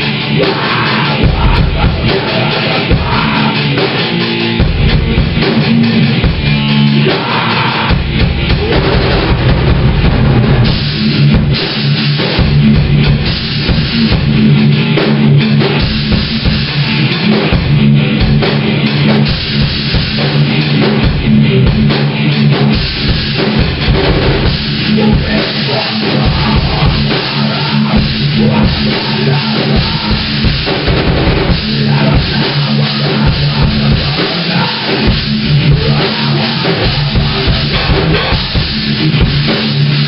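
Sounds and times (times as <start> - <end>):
driving bass drum: 0.0 - 40.0
electric guitar riffing: 0.0 - 40.0
heavy metal band playing: 0.0 - 40.0.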